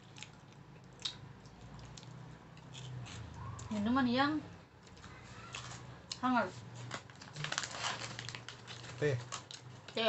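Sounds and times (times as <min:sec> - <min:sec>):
crunchy snack chewing: 0:00.0 - 0:03.7, 0:04.9 - 0:06.2, 0:06.8 - 0:09.8.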